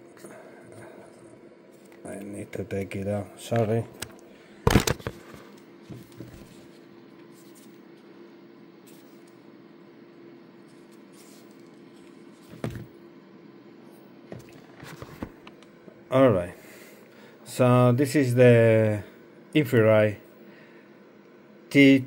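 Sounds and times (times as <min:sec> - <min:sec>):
faint steady hum: 0:00.0 - 0:22.0.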